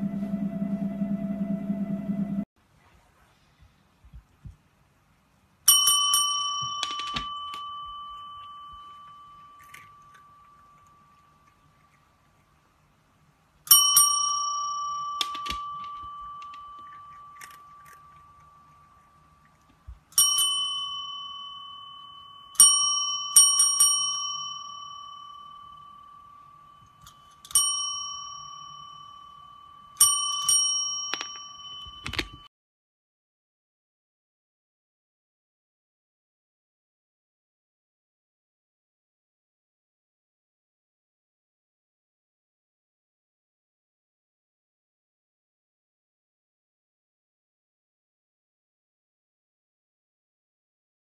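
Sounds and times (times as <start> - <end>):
dull taps on bell: 5.7 - 9.2, 13.7 - 16.9, 30.0 - 32.5
desk service bell ringing: 5.7 - 11.1, 13.7 - 17.8, 20.2 - 32.5.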